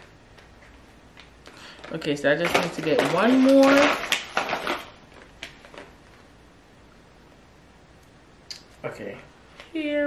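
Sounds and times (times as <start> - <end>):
small packages clicking and tapping: 0.3 - 6.2.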